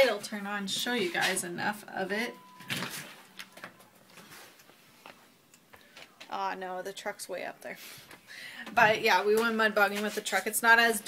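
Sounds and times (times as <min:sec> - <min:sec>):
phone handling noise: 0:02.6 - 0:05.2.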